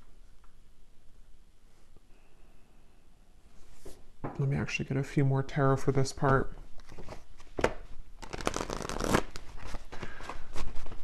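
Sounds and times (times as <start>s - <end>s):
cards shuffled by hand: 6.8s - 11.0s.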